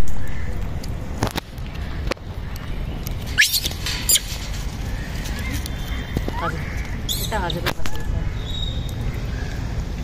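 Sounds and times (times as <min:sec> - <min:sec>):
monkey squealing calls: 0:03.4 - 0:04.4.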